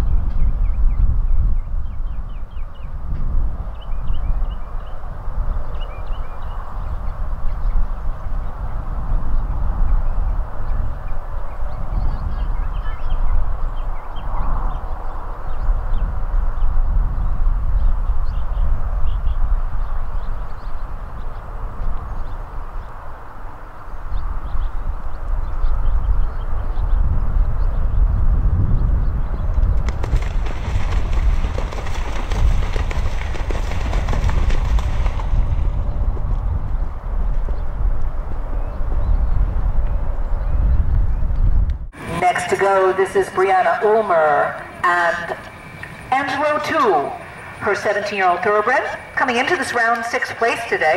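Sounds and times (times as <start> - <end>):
wind buffeting microphone: 0.0 - 50.9.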